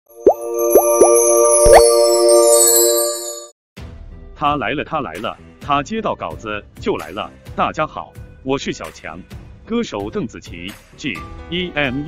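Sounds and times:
held bright synth chord: 0.1s - 3.5s.

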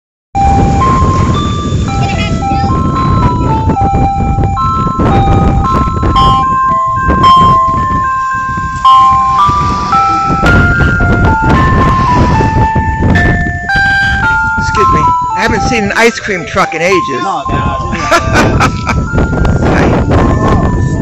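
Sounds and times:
low rumble: 0.4s - 14.6s
electronic chime melody over loudspeaker: 0.4s - 21.0s.

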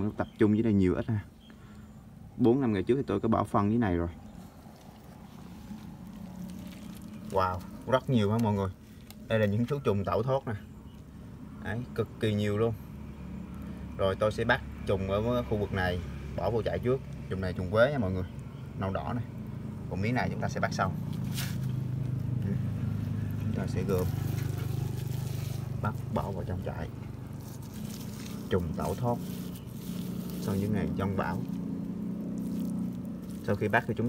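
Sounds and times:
steady low hum: 3.6s - 34.0s.

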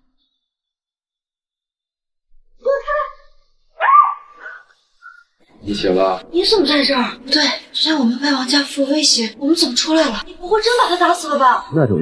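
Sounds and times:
woman shouting: 3.8s - 4.6s
woman's startled cry: 3.8s - 4.6s.

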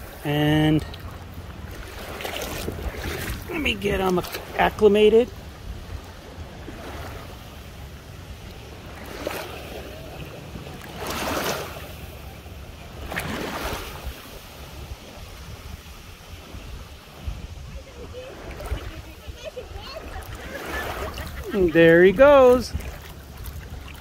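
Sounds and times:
louder washes of water: 0.0s - 12.2s, 12.8s - 24.0s
lake water lapping at shoreline: 0.0s - 24.0s
wind rumbling on microphone: 0.0s - 24.0s.

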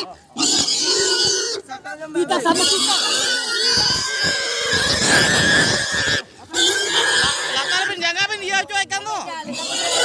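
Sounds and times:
pig squealing: 0.0s - 1.7s, 2.3s - 8.2s, 9.4s - 10.0s.

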